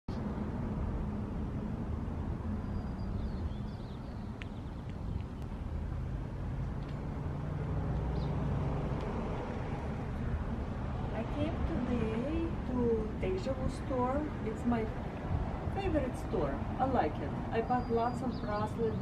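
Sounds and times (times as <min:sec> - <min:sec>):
traffic rumble: 0:00.1 - 0:19.0.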